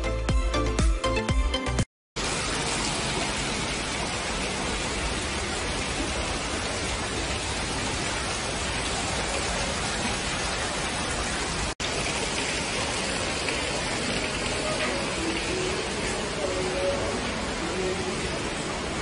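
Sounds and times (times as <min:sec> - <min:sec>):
waterfall splashing into pool: 0:02.2 - 0:19.0.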